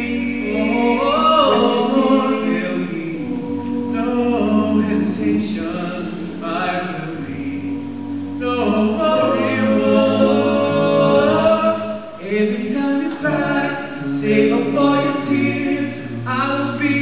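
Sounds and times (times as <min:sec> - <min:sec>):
male quartet singing a cappella: 0:00.0 - 0:17.0.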